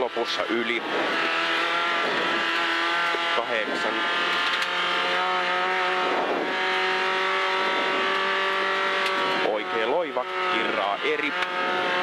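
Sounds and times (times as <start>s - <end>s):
rally car engine at high revs: 0.0s - 12.0s.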